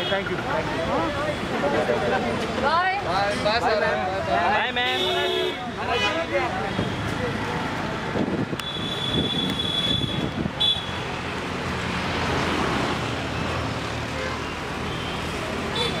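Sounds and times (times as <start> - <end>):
busy road traffic: 0.0 - 16.0.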